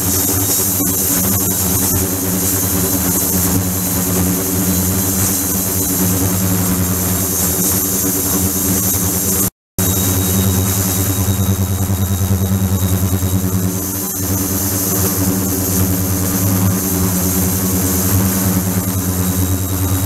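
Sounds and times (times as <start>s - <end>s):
ultrasonic tank humming: 9.8s - 20.0s.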